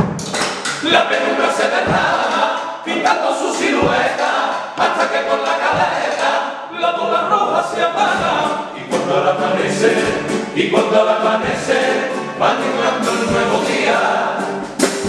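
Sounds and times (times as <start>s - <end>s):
male choir singing in harmony: 0.8s - 14.8s
guitar accompaniment: 6.9s - 15.0s.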